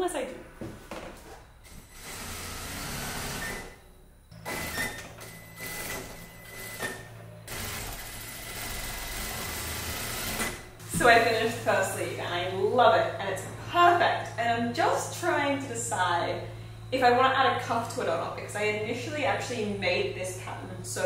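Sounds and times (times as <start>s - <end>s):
sewing machine stitching: 1.8s - 3.8s, 4.4s - 10.6s.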